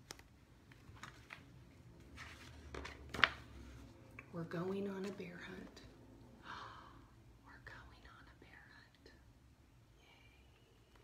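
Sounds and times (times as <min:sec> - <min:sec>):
low room hum: 0:00.0 - 0:11.0
person whispering: 0:07.4 - 0:09.3, 0:09.9 - 0:11.0.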